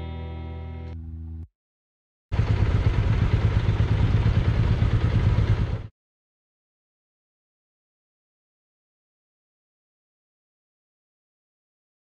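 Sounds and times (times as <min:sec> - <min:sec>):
motorcycle engine at low revs: 0:02.3 - 0:05.9.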